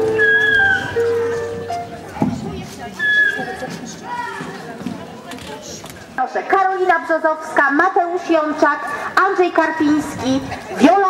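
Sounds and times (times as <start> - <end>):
people talking: 0.9 - 11.0.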